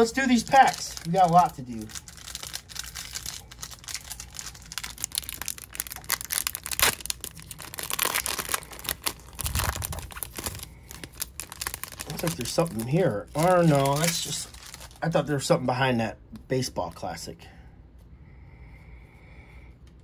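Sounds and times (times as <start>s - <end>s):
foil wrapper tearing and crinkling: 0.0s - 15.2s.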